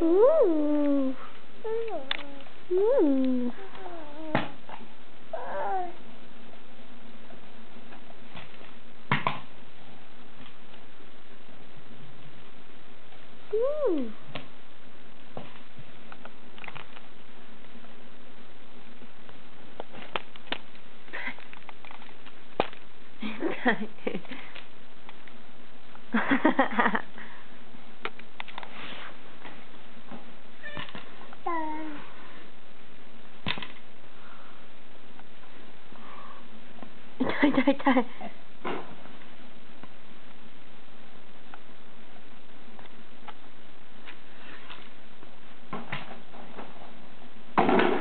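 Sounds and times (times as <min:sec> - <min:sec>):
background hiss: 0:00.0 - 0:48.0
toddler meow-like vocal sound: 0:05.3 - 0:06.0, 0:30.6 - 0:32.1.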